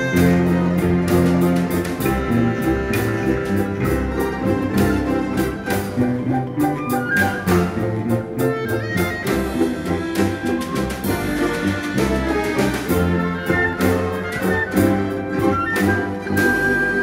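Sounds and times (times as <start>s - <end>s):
folk string ensemble: 0.0s - 17.0s
plucked bass notes: 0.0s - 17.0s.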